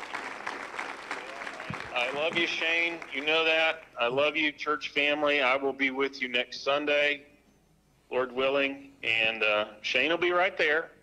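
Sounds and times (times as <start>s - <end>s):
congregation applauding: 0.0s - 4.0s
voices: 1.2s - 4.6s.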